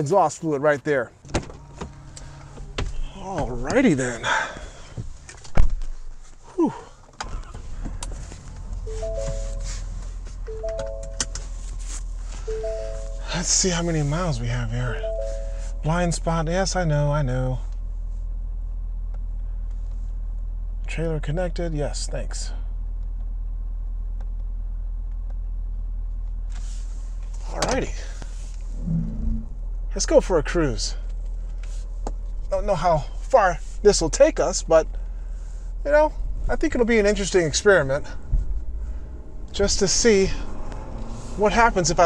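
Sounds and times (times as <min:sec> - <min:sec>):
diesel engine starting and idling: 0:01.2 - 0:05.4, 0:06.5 - 0:17.5, 0:26.6 - 0:42.0
dashboard alert chime: 0:08.8 - 0:11.5, 0:12.4 - 0:13.6, 0:14.9 - 0:15.9.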